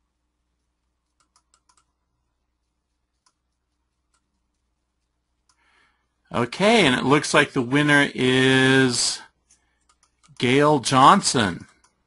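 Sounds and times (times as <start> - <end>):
faint computer clicks: 1.0 - 2.0, 9.5 - 10.5.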